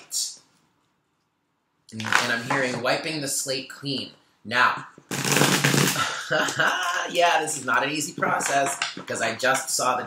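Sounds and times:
man speaking: 0:00.0 - 0:00.5, 0:01.9 - 0:05.0, 0:06.4 - 0:10.0
man laughing: 0:05.9 - 0:07.6.

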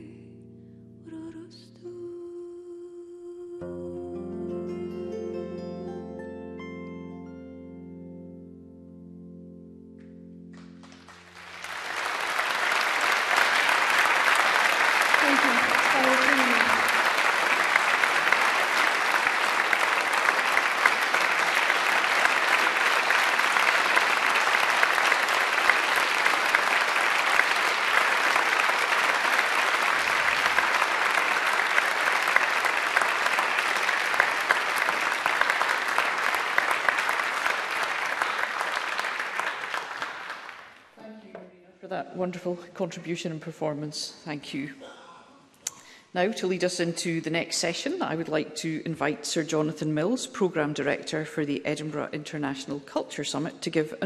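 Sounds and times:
audience applauding: 0:10.5 - 0:41.0.

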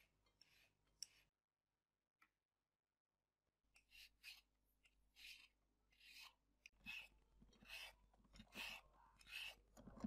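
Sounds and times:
vegetable peeler scraping: 0:03.8 - 0:10.0.

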